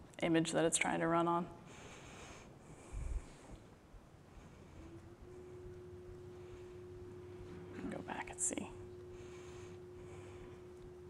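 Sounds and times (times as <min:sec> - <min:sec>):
low hum and faint hiss: 0:00.0 - 0:11.0.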